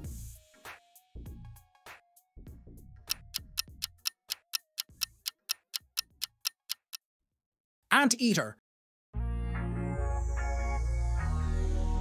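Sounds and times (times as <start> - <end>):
clock ticking timer: 3.1 - 7.0.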